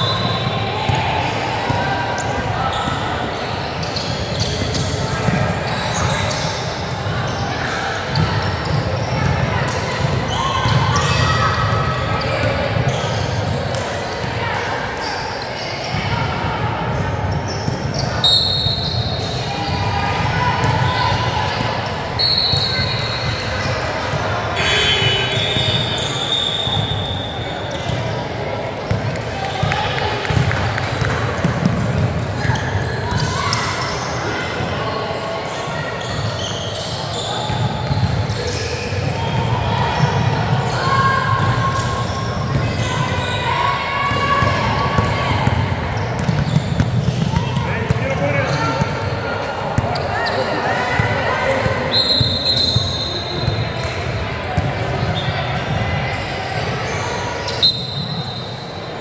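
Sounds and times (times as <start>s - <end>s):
voices echoing in gym: 0.0s - 59.0s.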